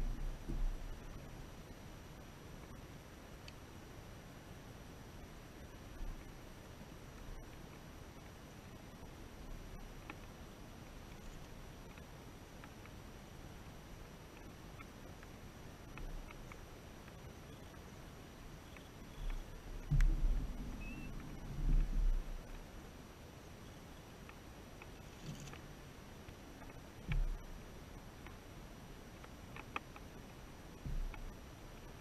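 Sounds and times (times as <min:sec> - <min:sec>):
dull low thumps: 0:00.0 - 0:01.1, 0:19.3 - 0:22.5, 0:30.9 - 0:31.3
faint ticks: 0:03.4 - 0:03.7, 0:05.6 - 0:22.7, 0:23.6 - 0:32.0.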